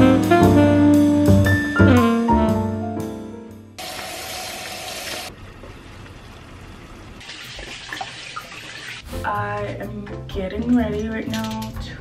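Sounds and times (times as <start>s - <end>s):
music with vocals: 9.1s - 12.0s.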